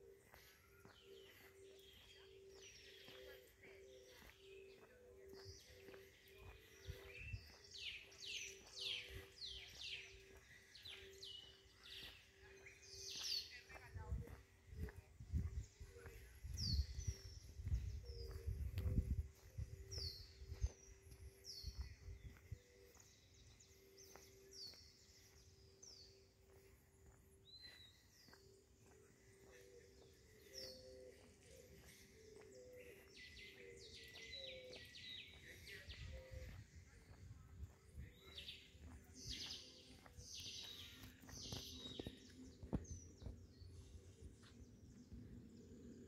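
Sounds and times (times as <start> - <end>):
small birds chirping: 0.0 - 46.0.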